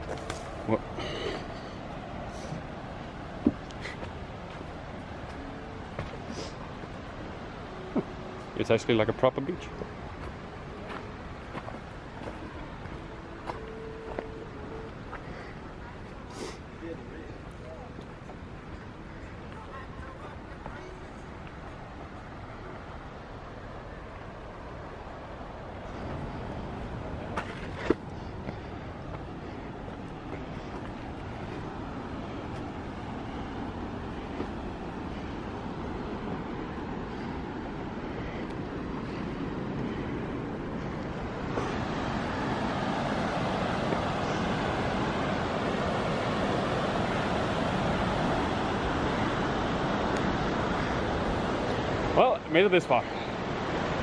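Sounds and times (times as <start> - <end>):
river rapids rushing: 0.0 - 54.0.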